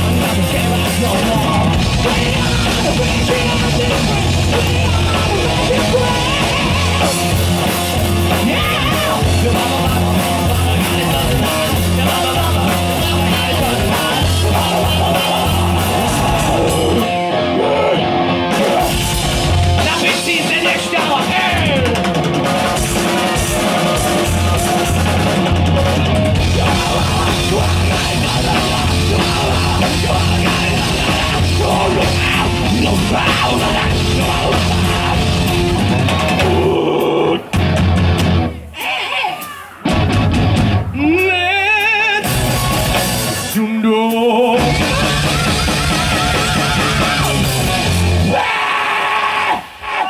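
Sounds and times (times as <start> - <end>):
live rock band playing: 0.0 - 49.8.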